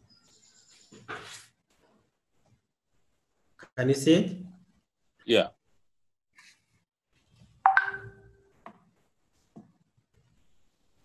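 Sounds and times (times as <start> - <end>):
electronic chime: 7.7 - 8.2.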